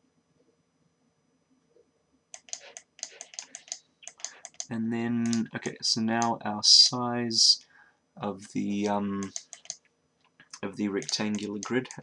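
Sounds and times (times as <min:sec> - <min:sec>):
computer keyboard typing: 0:02.4 - 0:06.4, 0:08.8 - 0:09.9, 0:10.9 - 0:12.0.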